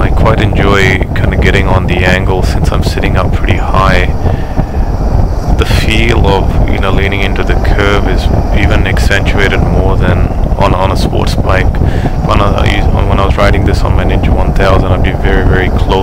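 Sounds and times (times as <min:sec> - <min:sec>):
man talking: 0:00.0 - 0:04.6, 0:05.5 - 0:16.0
wind buffeting microphone: 0:00.0 - 0:16.0.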